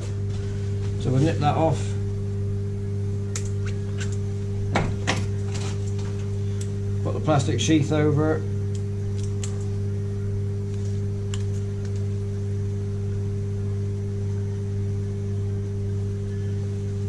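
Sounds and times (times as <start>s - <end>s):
low machine hum: 0.0s - 17.0s.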